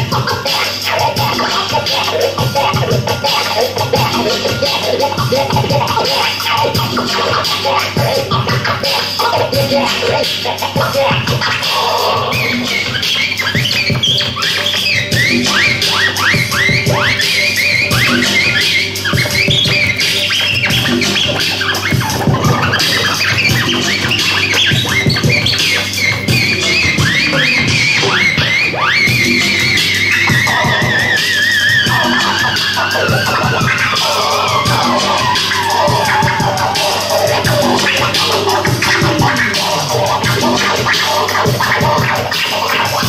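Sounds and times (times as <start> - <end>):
hip-hop beat: 0.0 - 43.0
turntable scratching: 0.0 - 43.0
wavering high scratched tone: 0.0 - 43.0.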